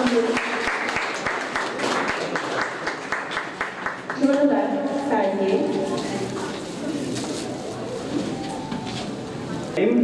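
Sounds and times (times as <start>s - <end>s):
room noise: 0.0s - 10.0s
murmur of voices: 4.2s - 10.0s.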